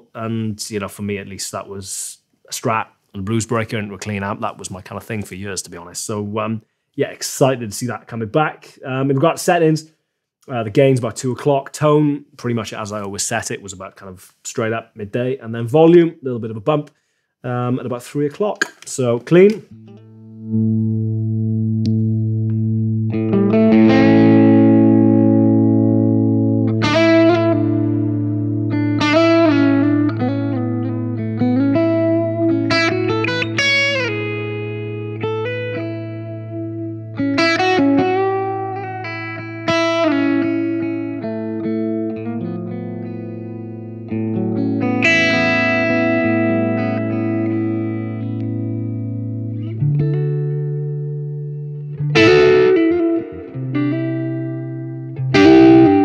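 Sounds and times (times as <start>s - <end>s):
overdriven electric guitar: 19.7s - 56.0s.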